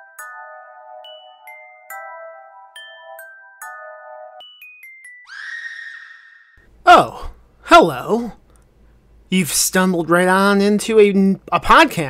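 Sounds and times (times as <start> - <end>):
shrill high-pitched tone: 5.2 - 6.6.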